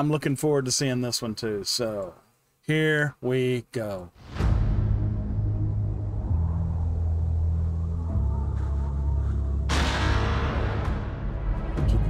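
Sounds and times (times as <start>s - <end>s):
deep low sustained drone: 4.6s - 12.0s
sudden loud burst: 9.7s - 11.8s.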